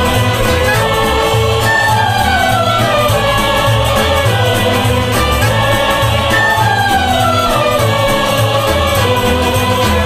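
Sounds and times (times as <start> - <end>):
instrumental accompaniment: 0.0 - 10.0
mixed choir singing: 0.0 - 10.0
pulsing bass line: 0.0 - 10.0.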